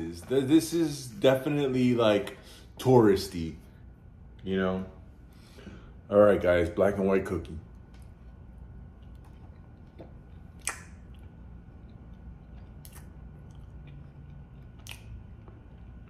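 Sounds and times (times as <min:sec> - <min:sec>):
mouth-closed chewing: 0:08.8 - 0:16.0
wet mouth clicks: 0:09.6 - 0:15.4.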